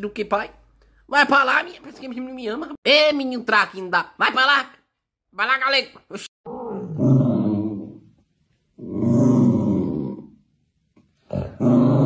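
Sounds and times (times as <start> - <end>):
cat growling low: 6.5 - 8.1, 8.8 - 10.4, 11.3 - 12.0.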